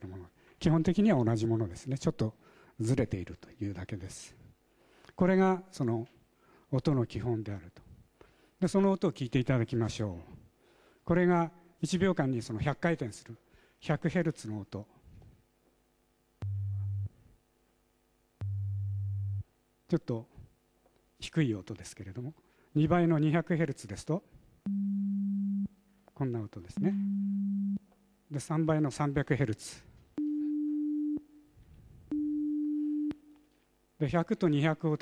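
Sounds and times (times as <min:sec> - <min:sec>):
low sine tone: 0:16.4 - 0:17.2, 0:18.4 - 0:19.5, 0:24.7 - 0:25.8, 0:26.8 - 0:27.8, 0:30.2 - 0:31.4, 0:32.1 - 0:33.4.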